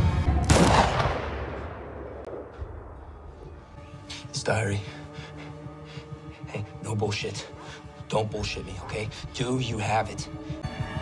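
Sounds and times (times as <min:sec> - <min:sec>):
low film score: 0:00.0 - 0:11.0
gunshot with echo: 0:00.4 - 0:02.8.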